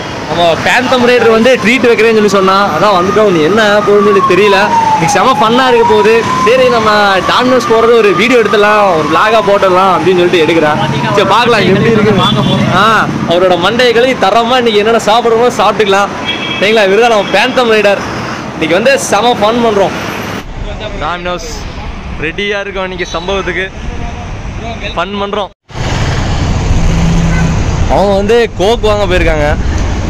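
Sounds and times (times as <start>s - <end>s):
city street traffic: 0.0s - 30.0s
low traffic rumble: 0.0s - 30.0s
men's voices: 0.3s - 16.1s
man talking: 0.3s - 18.0s, 18.6s - 20.0s, 20.6s - 25.6s, 27.9s - 29.7s.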